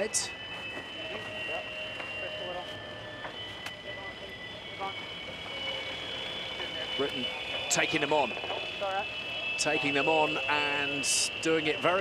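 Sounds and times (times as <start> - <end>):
high-pitched whine of held tones: 0.0 - 12.0.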